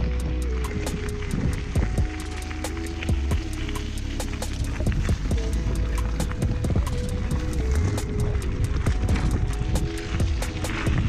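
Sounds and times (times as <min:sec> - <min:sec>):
bike tyres rumbling on gravel: 0:00.0 - 0:11.0
stones and bike rattling: 0:00.0 - 0:11.0
wind on microphone: 0:00.0 - 0:11.0.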